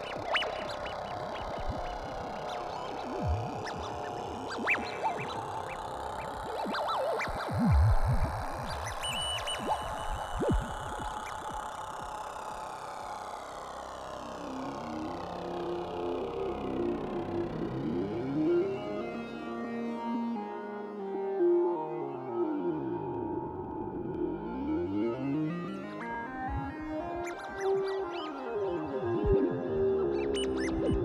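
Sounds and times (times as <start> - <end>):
downward-swooping blips: 6.6 - 12.1.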